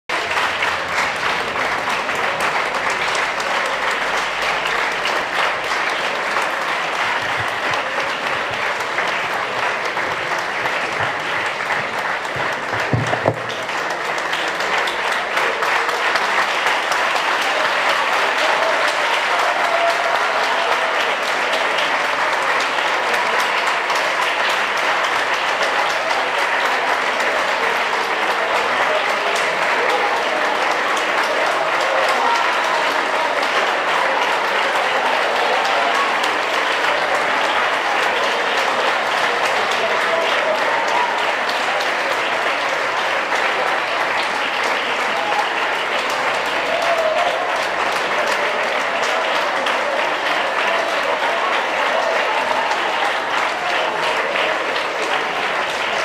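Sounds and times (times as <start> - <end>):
large audience applauding: 0.1 - 56.0.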